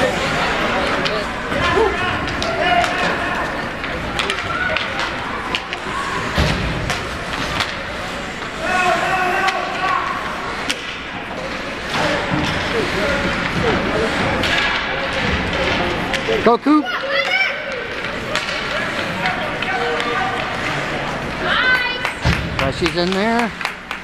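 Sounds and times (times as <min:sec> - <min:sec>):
hockey sticks and puck clacking: 0:00.2 - 0:24.0.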